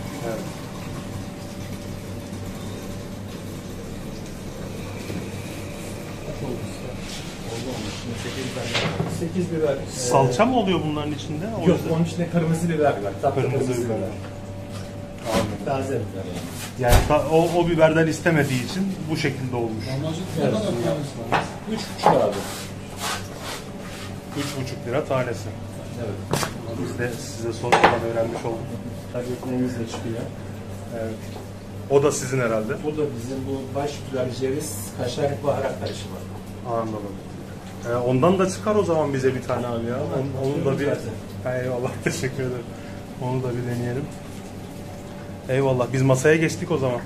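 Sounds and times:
low machine hum: 0.0 - 47.0.

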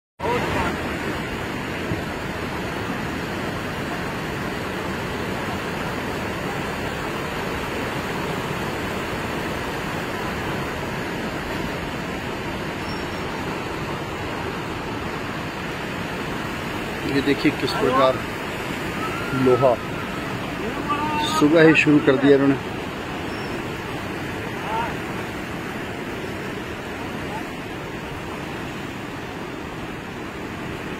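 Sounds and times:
floodwater rushing: 0.2 - 30.9.

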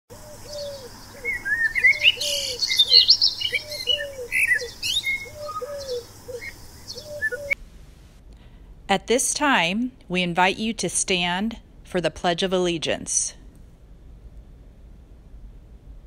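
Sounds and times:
birds chirping: 0.1 - 7.6
lower bird call: 0.1 - 7.6.

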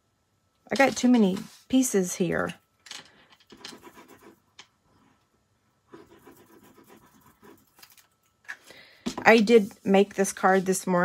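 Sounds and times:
paper rustling and scraping on desk: 9.3 - 11.0.

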